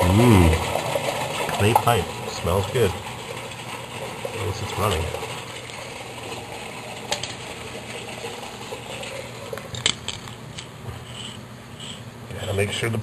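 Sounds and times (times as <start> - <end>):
sump pump humming: 0.0 - 13.0.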